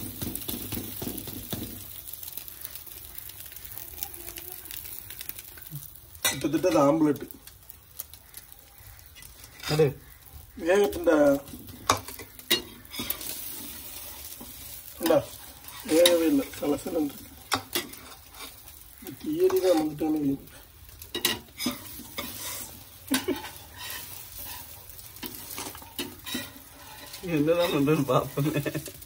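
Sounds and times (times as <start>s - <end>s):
bread sizzling on a pan: 0.0s - 29.0s
metal spatula scraping pan: 9.1s - 28.6s
person speaking: 27.2s - 28.8s.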